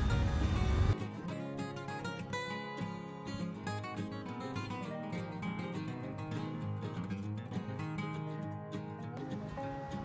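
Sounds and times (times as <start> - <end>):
strummed acoustic guitar music: 0.0 - 10.0.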